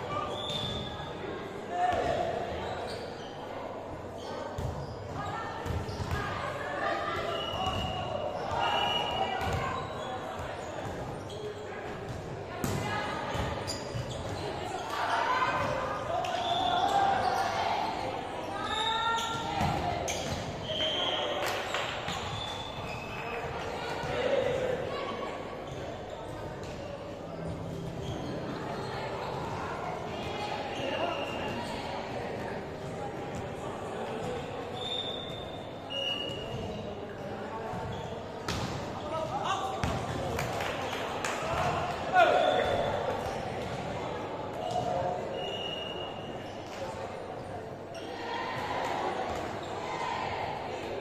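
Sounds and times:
players shouting and chattering: 0.0 - 51.0.

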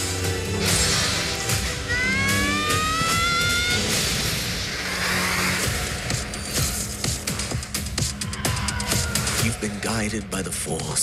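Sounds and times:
dramatic music: 0.0 - 11.0.

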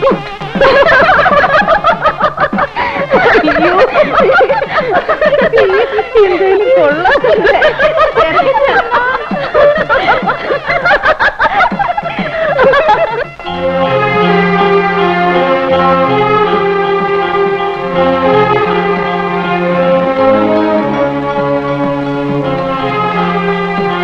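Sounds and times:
crowd laughing and calling out: 0.0 - 13.4
music: 0.0 - 24.0.

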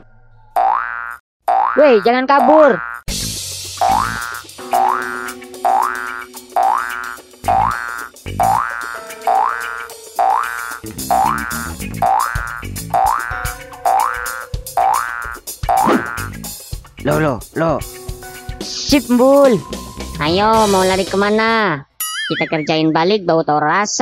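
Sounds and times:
cartoon spring boing: 0.0 - 3.0, 3.8 - 16.4
background music with held notes: 3.4 - 21.6.

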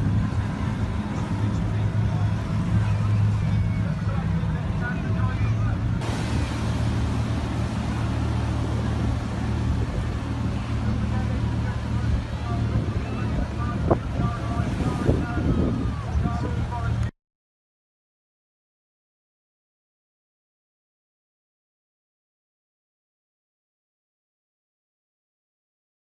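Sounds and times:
boat rushing through water: 0.0 - 17.1
faint crowd voices: 0.0 - 17.1
outboard engines humming: 0.0 - 17.1.

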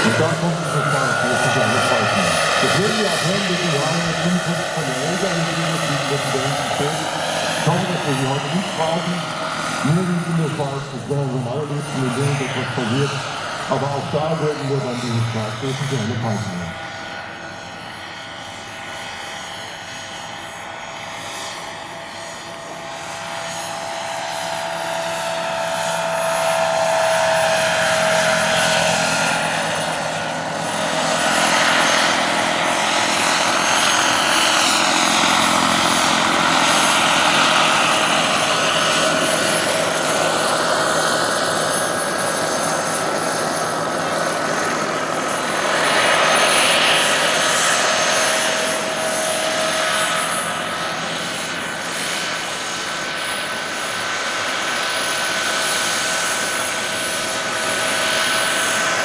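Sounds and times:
helicopter rotor noise: 0.0 - 59.0
model helicopter turbine whine: 0.0 - 59.0.

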